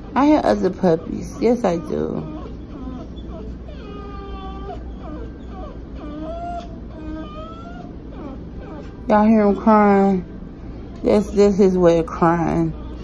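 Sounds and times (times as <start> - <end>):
young dog whining: 0.0 - 10.1, 12.2 - 13.0.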